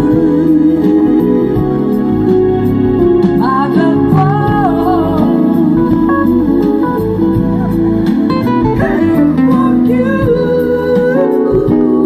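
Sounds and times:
bass: 0.0s - 12.0s
drums: 0.0s - 12.0s
keyboards: 0.0s - 12.0s
pitch-bending lead melody: 0.0s - 12.0s.

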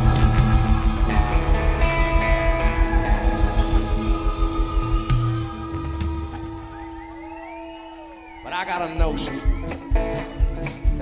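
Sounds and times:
drums: 0.0s - 11.0s
live band instrumental: 0.0s - 11.0s.

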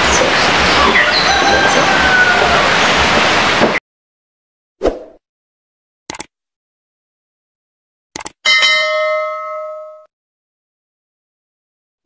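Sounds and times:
notification bell ding: 8.5s - 10.1s.

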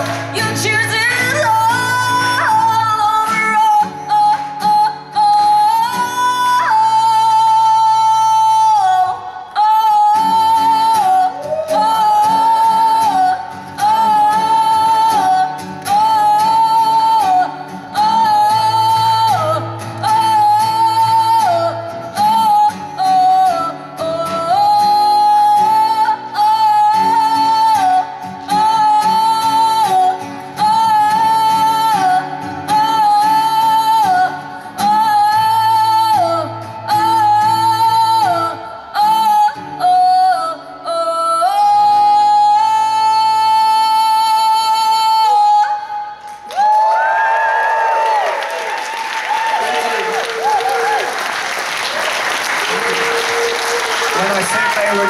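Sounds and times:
strummed acoustic guitar: 0.0s - 46.5s
woman singing into microphone: 0.0s - 47.0s.

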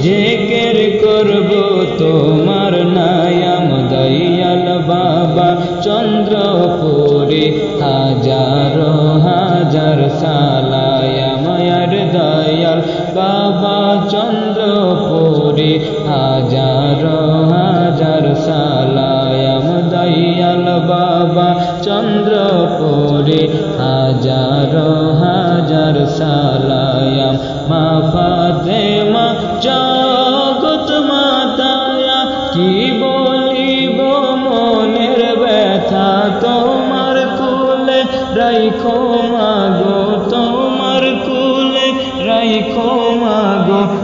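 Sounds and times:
devotional chanted singing: 0.0s - 44.0s.

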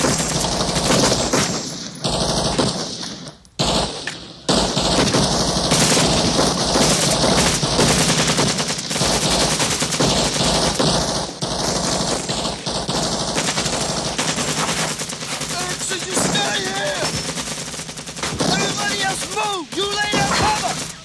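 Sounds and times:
rifles in automatic fire: 0.0s - 21.0s.

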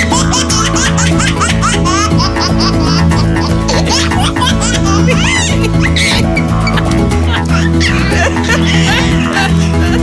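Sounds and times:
music with sustained bass: 0.0s - 10.0s
high-pitched squeaky laughing: 0.5s - 10.0s.

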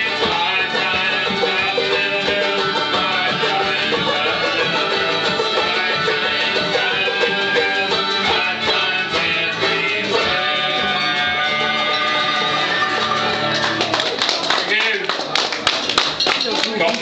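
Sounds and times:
banjo: 0.0s - 14.6s
strummed acoustic guitars: 0.0s - 17.0s.

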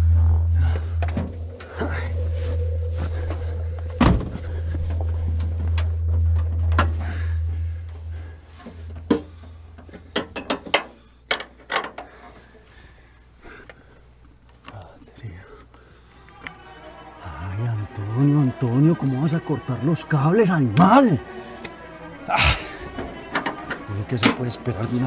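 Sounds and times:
low droning suspense music: 0.0s - 11.3s, 16.1s - 25.0s.

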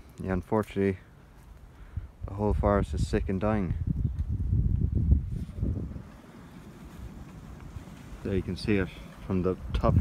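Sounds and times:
wind buffeting microphone: 1.8s - 10.0s.

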